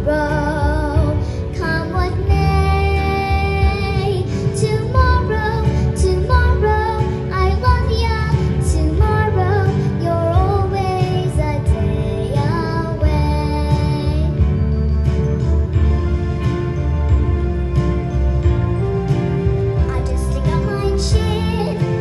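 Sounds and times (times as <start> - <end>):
girl singing into a microphone: 0.0 - 14.6, 19.8 - 22.0
instrumental accompaniment with bass: 0.0 - 22.0.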